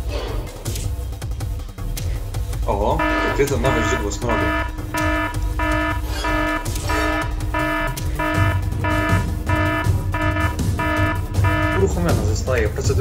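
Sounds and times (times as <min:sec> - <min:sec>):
electronic alarm beeping: 0:03.0 - 0:12.0.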